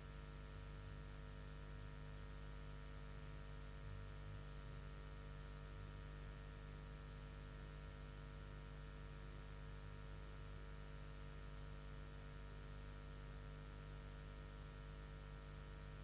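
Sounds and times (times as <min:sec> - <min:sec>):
faint mains hum: 0:00.0 - 0:16.0.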